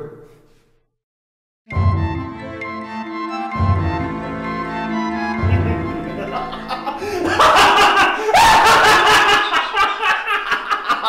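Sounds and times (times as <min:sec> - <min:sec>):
man laughing loudly: 0:05.4 - 0:11.0.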